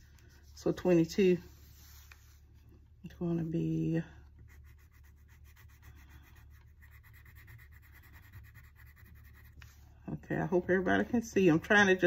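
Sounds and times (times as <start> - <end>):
crayon scribbling on paper: 4.4 - 9.8.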